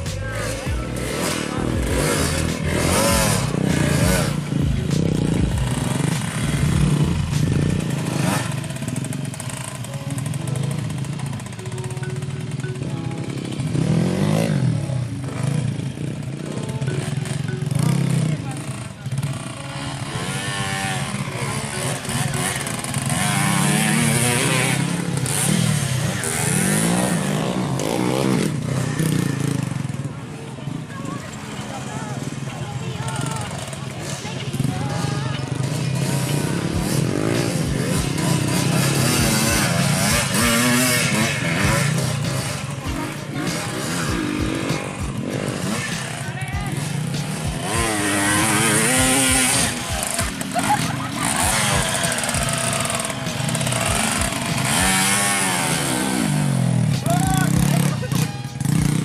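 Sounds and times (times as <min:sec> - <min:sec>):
music: 0:00.0 - 0:29.9, 0:32.1 - 0:59.0
motorcycle engines revving: 0:00.0 - 0:59.0
voices: 0:00.0 - 0:59.0.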